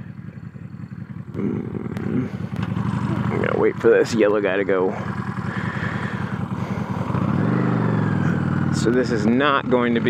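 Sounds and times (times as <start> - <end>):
motorcycle engine idling and revving: 0.0 - 10.0.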